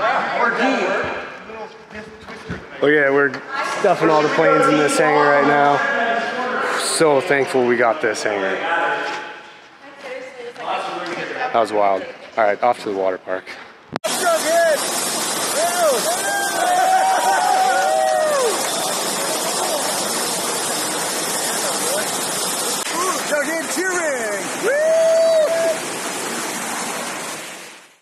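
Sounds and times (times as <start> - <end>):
rushing water: 14.0 - 28.0
people shouting and whooping: 15.4 - 20.6, 22.9 - 26.0.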